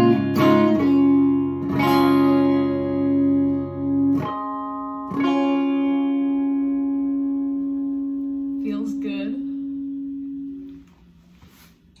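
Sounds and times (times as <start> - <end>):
electric guitar note ringing: 0.0 - 12.0.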